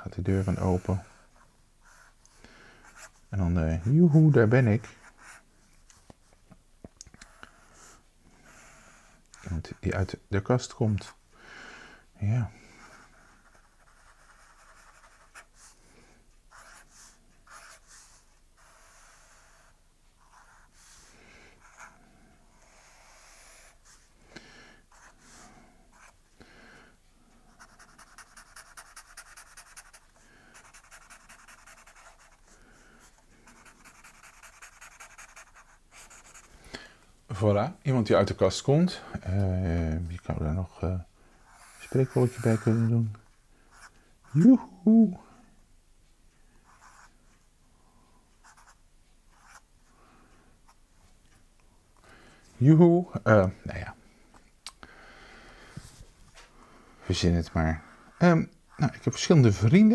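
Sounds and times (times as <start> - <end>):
marker scribbling on paper: 12.9 - 15.7, 16.5 - 20.9, 27.6 - 32.6, 33.4 - 36.5, 41.4 - 43.0, 48.4 - 49.6
felt-tip pen scratching paper: 27.6 - 32.5, 33.4 - 36.5.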